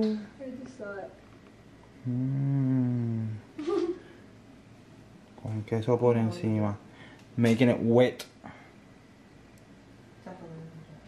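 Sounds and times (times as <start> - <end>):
person humming mm: 2.0 - 3.5.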